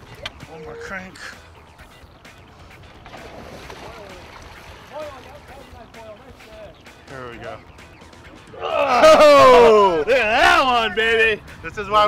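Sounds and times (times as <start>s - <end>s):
water sloshing against boat: 0.0s - 8.5s
people calling out: 8.4s - 11.0s.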